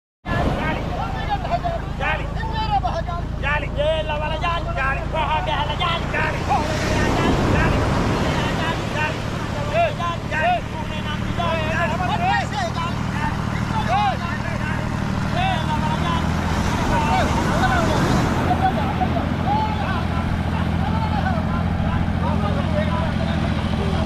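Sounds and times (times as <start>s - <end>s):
people calling and shouting: 0.2s - 24.0s
surf washing: 0.3s - 3.4s, 4.1s - 24.0s.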